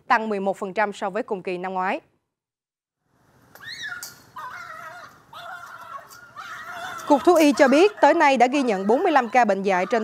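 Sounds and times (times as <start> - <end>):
dog whining: 3.6 - 8.0.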